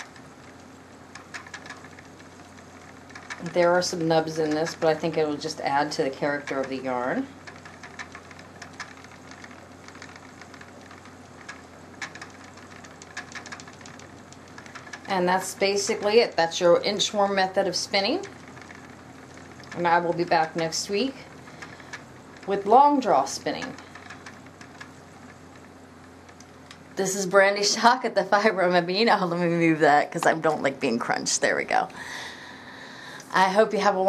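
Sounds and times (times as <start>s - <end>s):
spinning wheel humming: 0.0s - 34.0s.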